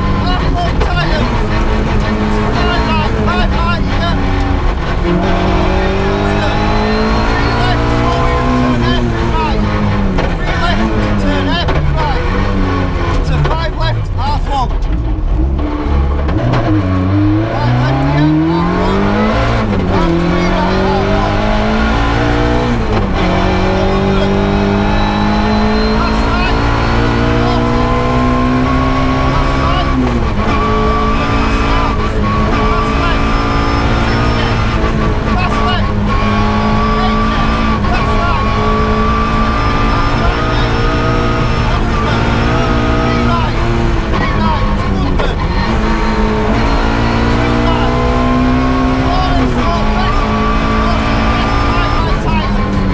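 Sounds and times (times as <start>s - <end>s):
rally car engine revving: 0.0s - 52.9s.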